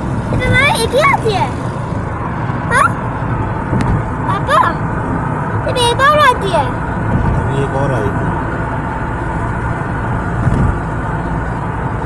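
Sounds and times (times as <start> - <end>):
car engine and tyre rumble: 0.0 - 12.0.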